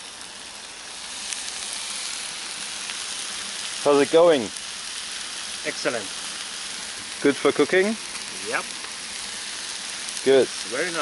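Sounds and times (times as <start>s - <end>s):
food sizzling in a pan: 0.0s - 11.0s.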